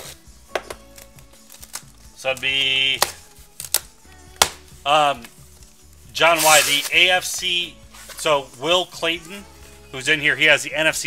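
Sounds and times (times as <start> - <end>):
cardboard rustling: 6.2 - 8.5.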